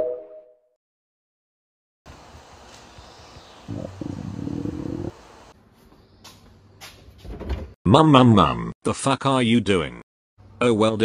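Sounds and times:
stomach rumbling: 0:03.7 - 0:05.1.

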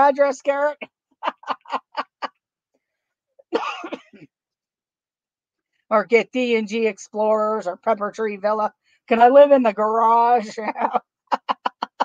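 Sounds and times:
woman laughing: 0:01.2 - 0:02.3, 0:10.4 - 0:12.0
woman coughing: 0:03.5 - 0:04.3.

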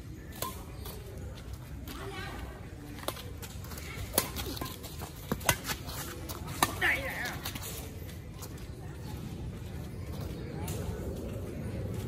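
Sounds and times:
badminton rackets hitting shuttlecock: 0:04.1 - 0:05.8.

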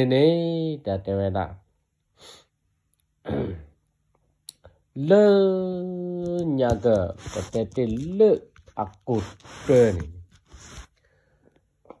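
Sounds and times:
man talking: 0:00.0 - 0:01.6, 0:05.0 - 0:10.4.

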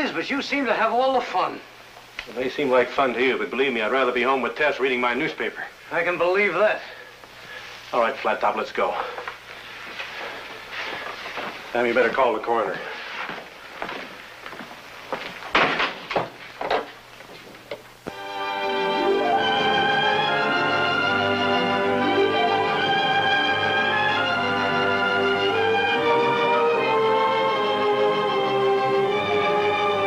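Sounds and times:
orchestral music with strings: 0:18.1 - 0:30.0.

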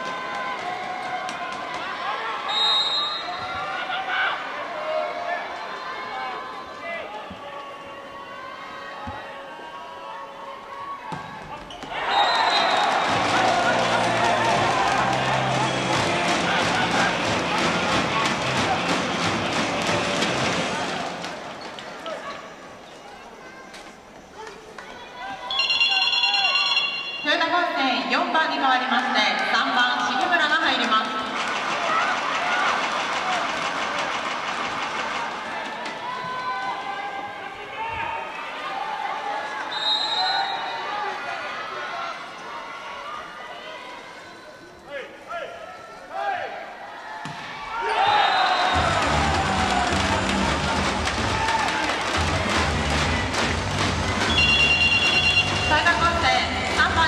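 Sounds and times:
crowd cheering and chanting: 0:00.0 - 0:22.1, 0:24.8 - 0:44.0, 0:46.1 - 0:57.0.

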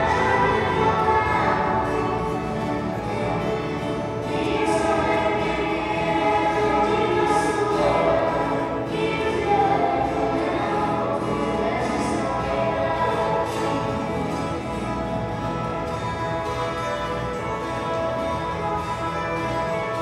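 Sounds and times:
young voices singing together: 0:00.0 - 0:14.8
string instruments strumming: 0:00.0 - 0:20.0.

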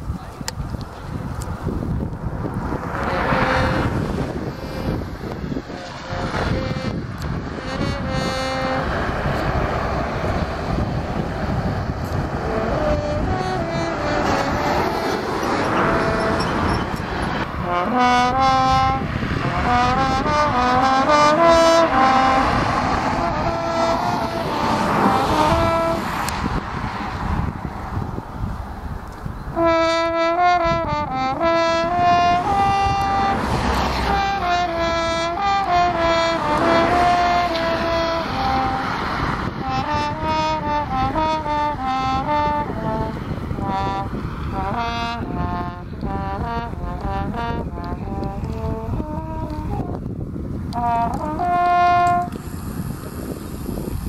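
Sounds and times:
passing road traffic: 0:00.0 - 0:54.0
french horn melody: 0:02.8 - 0:11.3, 0:11.9 - 0:26.4, 0:29.6 - 0:50.1, 0:50.7 - 0:52.4.

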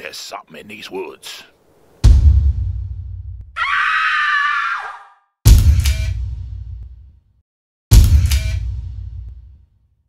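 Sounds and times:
deep boom hit: 0:02.1 - 0:03.4
person screaming: 0:03.6 - 0:05.2.

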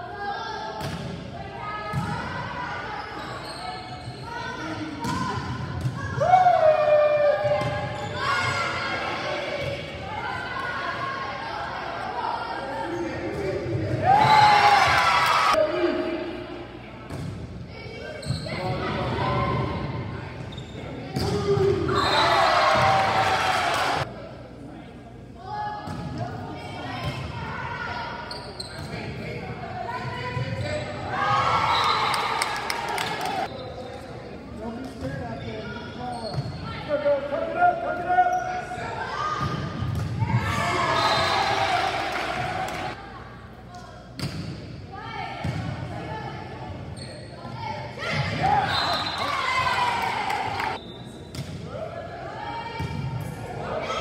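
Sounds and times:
people shouting and cheering: 0:05.9 - 0:12.7, 0:14.0 - 0:15.6, 0:47.9 - 0:50.8.

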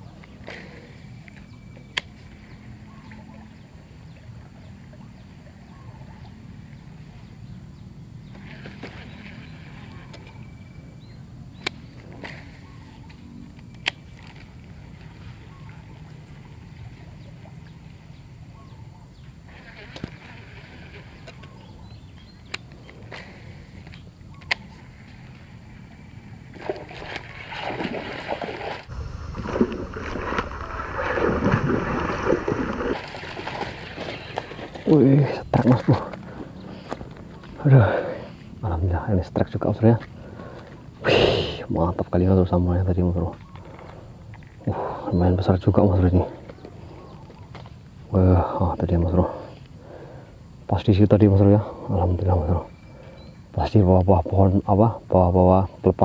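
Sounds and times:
fish thrashing and splashing water: 0:26.5 - 0:34.9.

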